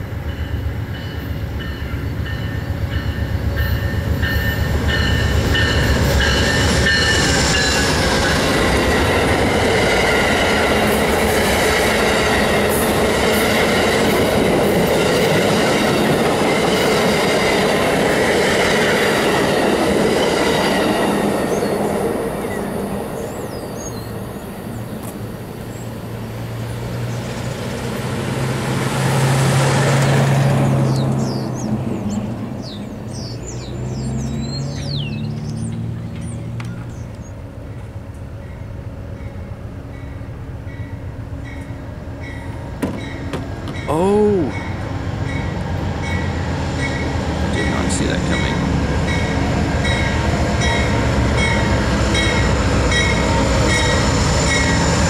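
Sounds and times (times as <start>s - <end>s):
passenger train passing: 0.0s - 55.0s.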